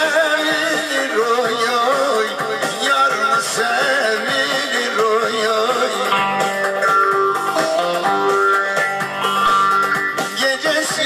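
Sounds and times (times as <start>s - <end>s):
man singing into a microphone: 0.0s - 6.6s, 10.2s - 11.0s
plucked lute notes: 5.9s - 10.6s.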